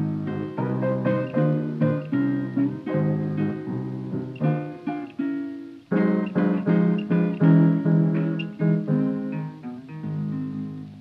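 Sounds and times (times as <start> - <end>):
piano: 0.0 - 11.0
picked acoustic guitar: 0.0 - 11.0.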